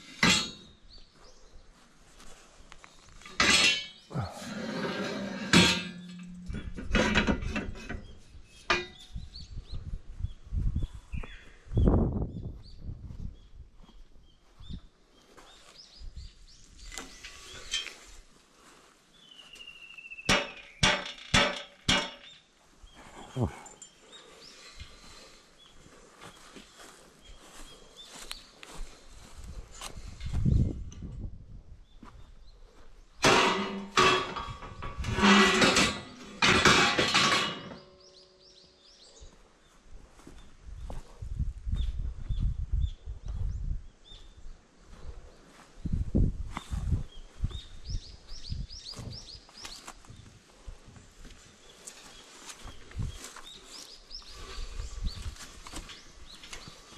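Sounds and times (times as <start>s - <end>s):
metal pipes knocking and clanking: 0.0s - 0.8s, 3.2s - 9.3s, 20.3s - 22.4s, 33.2s - 38.3s.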